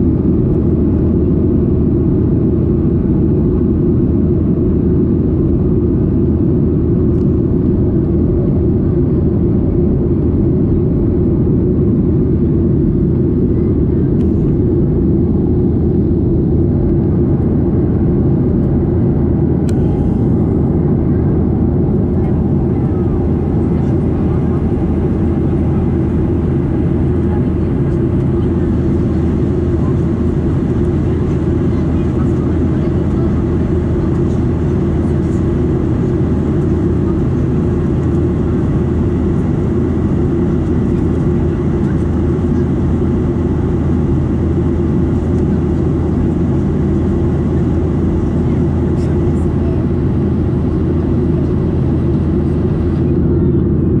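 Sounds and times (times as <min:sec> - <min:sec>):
jet engine drone in cabin: 0:00.0 - 0:54.0.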